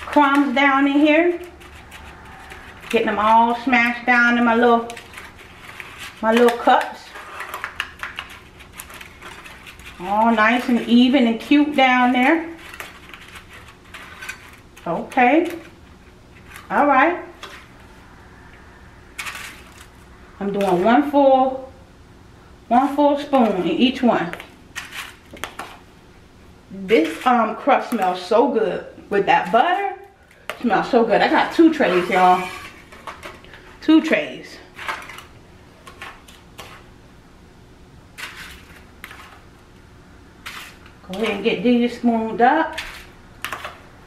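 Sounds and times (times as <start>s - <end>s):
metal spoon scraping crumbs: 0.0s - 15.8s, 24.8s - 25.7s, 38.2s - 39.5s, 40.4s - 42.0s, 42.6s - 43.8s.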